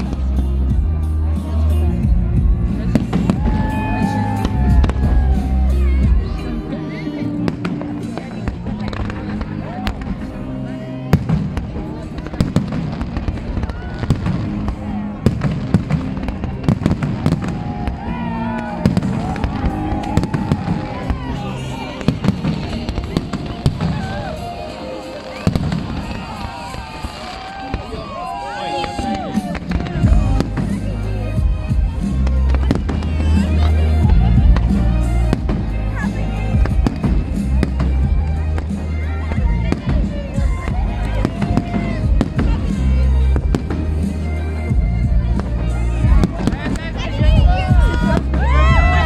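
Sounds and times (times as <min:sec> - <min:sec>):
crowd voices: 0:00.0 - 0:49.0
music: 0:00.0 - 0:49.0
firework shells banging and crackling: 0:11.1 - 0:44.2.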